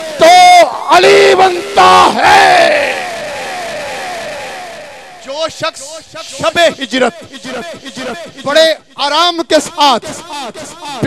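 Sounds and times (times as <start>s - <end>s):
man's amplified voice holding note: 0.0s - 2.3s.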